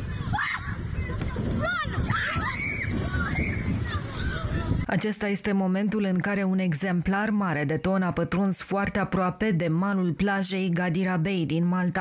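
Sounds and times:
children screaming and shouting: 0.0 - 4.9
wind and water rumble: 0.0 - 5.2.

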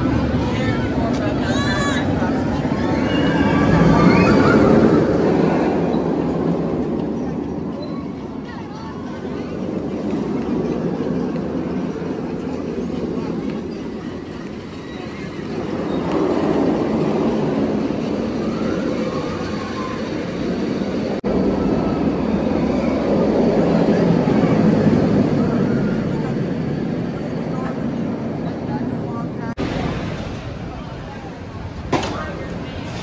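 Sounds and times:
roller coaster rumbling on track: 0.0 - 33.0.

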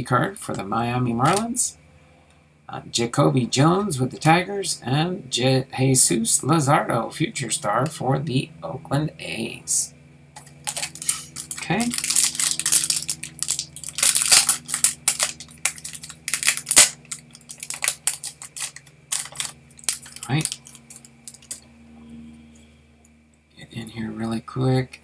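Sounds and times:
cards being handled: 10.4 - 21.6
wrapper crinkling and tearing: 10.4 - 21.6.

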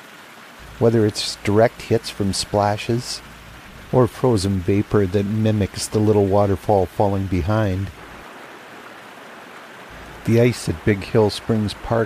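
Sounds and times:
creek water rushing down cascade: 0.0 - 12.0.

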